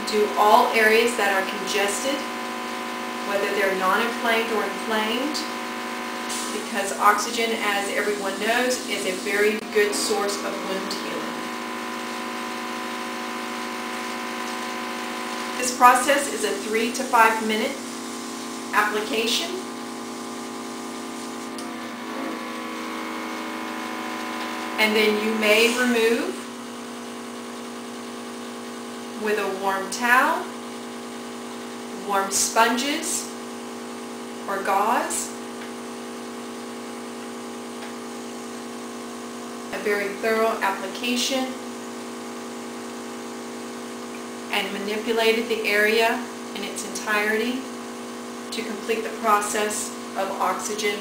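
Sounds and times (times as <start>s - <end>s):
compressor motor hum with hiss: 0.0s - 51.0s.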